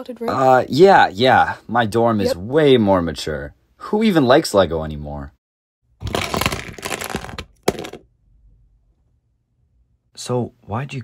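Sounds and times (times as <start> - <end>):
plastic bricks clattering: 6.0 - 8.0
sharp plastic crack: 6.0 - 8.0.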